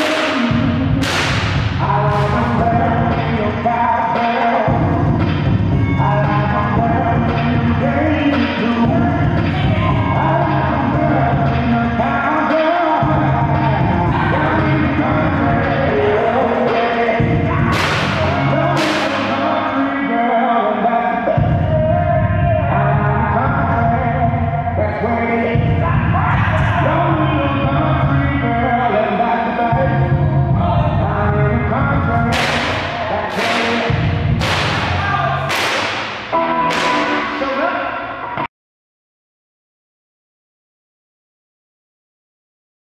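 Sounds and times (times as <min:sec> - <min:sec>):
soul music playing: 0:00.0 - 0:38.5
sharp whip-crack-like hits: 0:01.0 - 0:01.6, 0:17.8 - 0:18.2, 0:32.4 - 0:33.8, 0:34.4 - 0:37.1.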